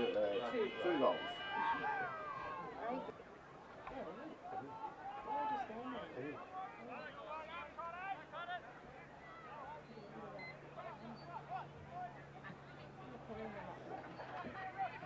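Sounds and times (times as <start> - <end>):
distant voices calling and shouting: 0.0 - 15.0.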